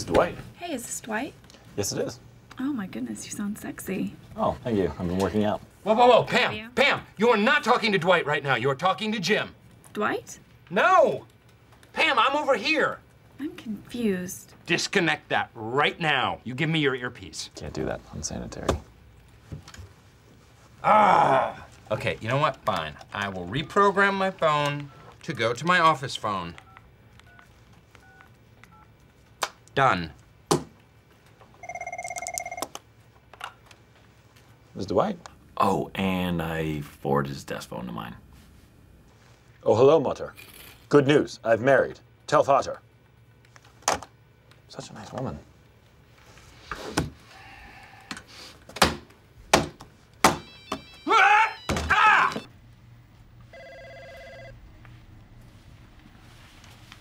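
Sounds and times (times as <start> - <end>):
phone keypad beeps: 31.6 - 32.7
desk telephone ringing: 31.6 - 32.8, 50.4 - 52.5, 53.5 - 54.8.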